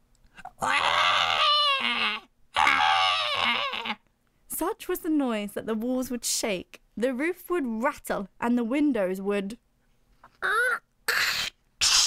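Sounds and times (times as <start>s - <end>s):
screams like bawling baby: 0.4s - 4.0s, 10.4s - 12.0s.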